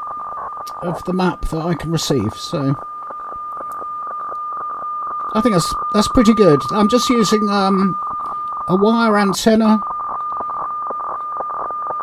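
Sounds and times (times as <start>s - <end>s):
whistle-like radio tone with ticking: 0.0s - 12.0s.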